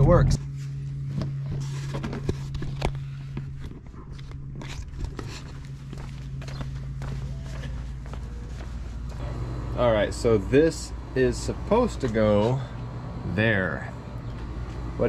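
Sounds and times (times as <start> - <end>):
steady low hum: 0.0 - 15.0
footsteps: 3.3 - 9.4, 14.2 - 15.0.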